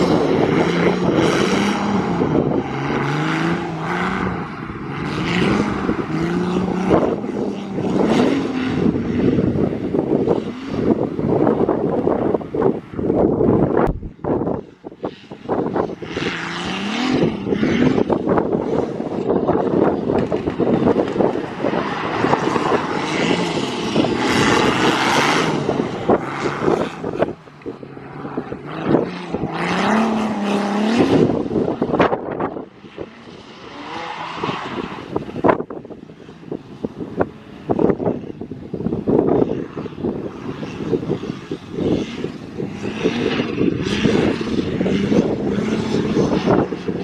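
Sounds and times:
car engine revving hard: 0:00.0 - 0:11.4, 0:16.2 - 0:18.9, 0:22.0 - 0:27.4, 0:28.0 - 0:32.2.

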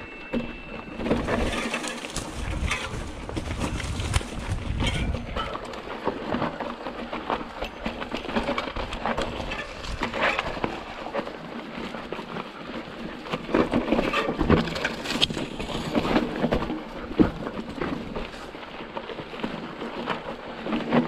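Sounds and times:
bike rattling and knocking: 0:00.0 - 0:21.0
tyres crunching over rock and gravel: 0:00.8 - 0:21.0.

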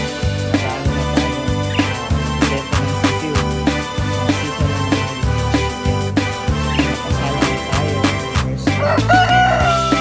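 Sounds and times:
background music with beat: 0:00.0 - 0:10.0
rooster crowing: 0:08.8 - 0:10.0.

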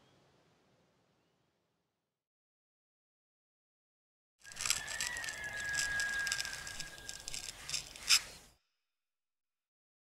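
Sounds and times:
razor scraping stubble: 0:04.4 - 0:08.5.

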